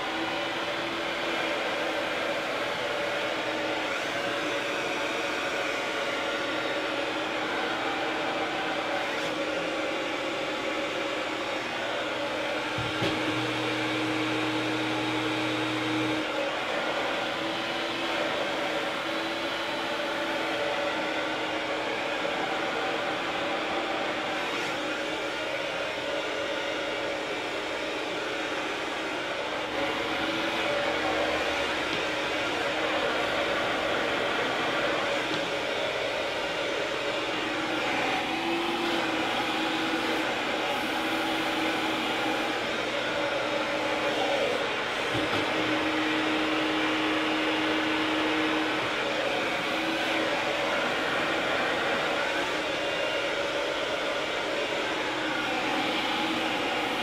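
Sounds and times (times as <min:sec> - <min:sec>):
hair dryer blowing: 0:00.0 - 0:57.0.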